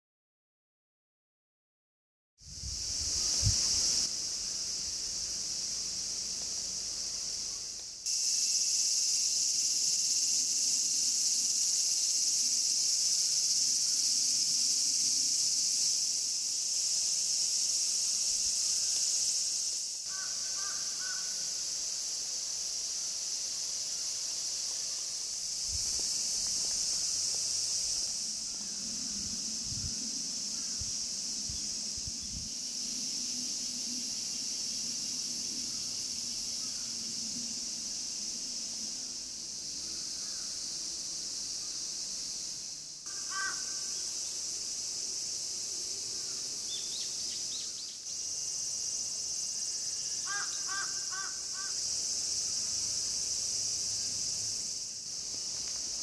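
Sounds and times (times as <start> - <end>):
cicada chorus drone: 2.4 - 56.0.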